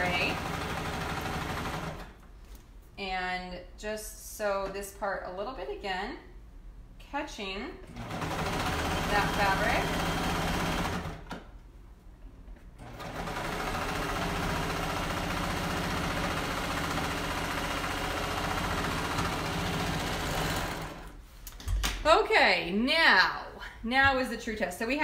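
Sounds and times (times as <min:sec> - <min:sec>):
electric sewing machine running: 0:00.0 - 0:02.1, 0:07.9 - 0:11.3, 0:12.8 - 0:21.2.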